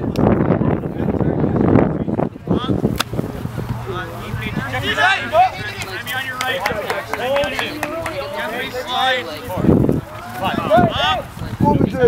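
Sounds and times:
players shouting: 3.2s - 12.0s.

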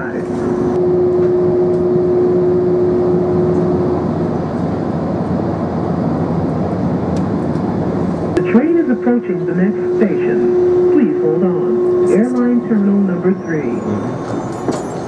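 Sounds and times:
train ride rumble: 0.0s - 15.0s
held tone: 0.8s - 4.0s, 8.4s - 14.9s
automated announcement: 8.4s - 14.5s.

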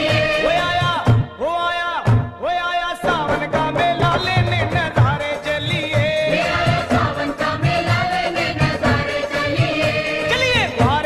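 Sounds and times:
chorus singing devotional song: 0.0s - 1.3s, 3.0s - 11.0s
steady drum beat: 0.0s - 11.0s.

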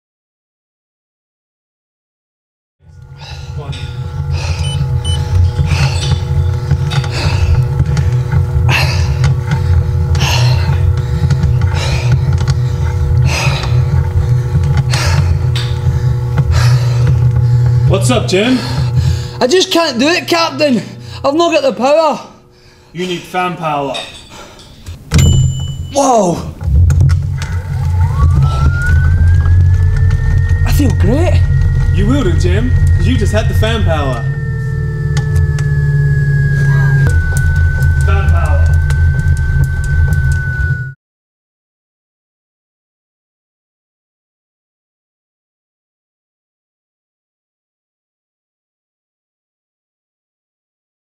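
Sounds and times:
electronic whine rising in pitch: 2.8s - 21.8s, 25.1s - 41.0s
loud steady low hum: 2.8s - 41.0s
deep pulsing rumble: 2.9s - 20.2s, 26.5s - 41.0s
man breathing hard: 3.1s - 6.3s, 6.9s - 17.8s, 18.5s - 19.4s, 22.3s - 23.0s, 24.2s - 25.0s.

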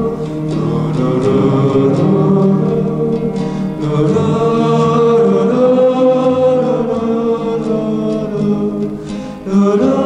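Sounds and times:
voices singing sustained notes: 0.0s - 10.0s.

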